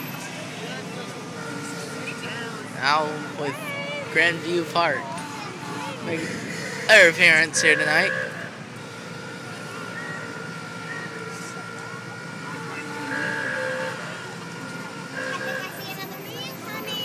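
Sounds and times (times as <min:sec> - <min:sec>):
street crowd noise: 0:00.0 - 0:17.0
vehicle engine running: 0:00.0 - 0:17.0.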